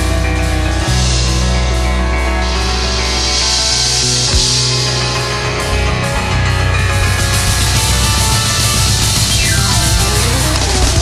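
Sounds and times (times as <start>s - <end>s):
jazz band playing: 0.0s - 11.0s
low drum hit: 0.8s - 11.0s.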